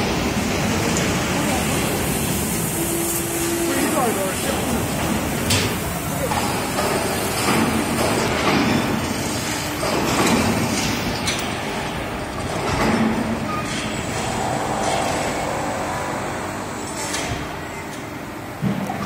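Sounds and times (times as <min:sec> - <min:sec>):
heavy machinery noise: 0:00.0 - 0:19.0.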